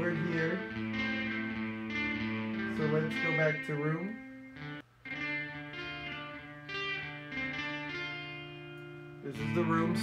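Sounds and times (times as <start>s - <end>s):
electric guitar notes with reverb: 0.0s - 10.0s.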